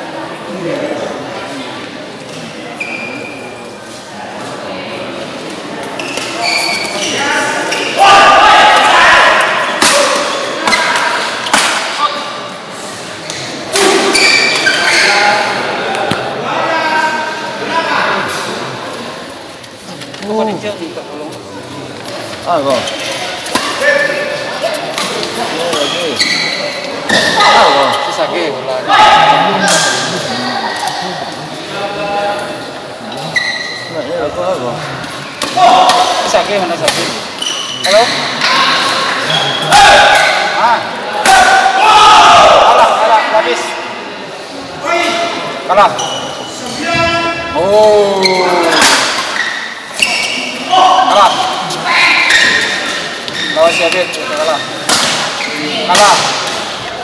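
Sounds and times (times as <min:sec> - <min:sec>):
players shouting: 0:07.0 - 0:11.4, 0:38.4 - 0:43.4.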